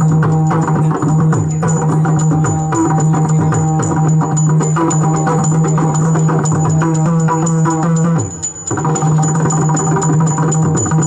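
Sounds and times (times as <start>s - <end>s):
hand cymbals keeping time: 0.0s - 11.0s.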